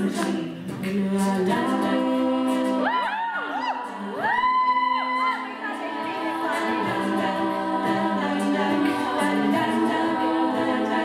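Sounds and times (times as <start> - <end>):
lower voices holding steady notes: 5.0 - 11.0.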